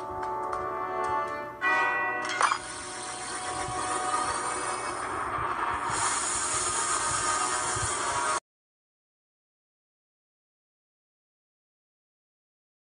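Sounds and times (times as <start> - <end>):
film soundtrack music: 0.0 - 5.9.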